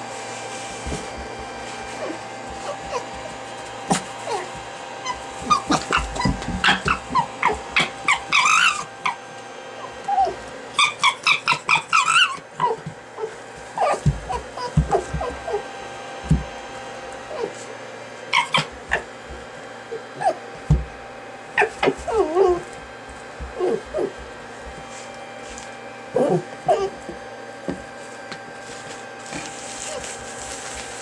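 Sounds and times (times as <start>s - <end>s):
fox whining yips: 2.0s - 3.4s, 4.2s - 9.2s, 9.8s - 15.7s, 18.3s - 19.1s, 21.5s - 22.7s, 23.5s - 24.2s, 26.2s - 27.0s.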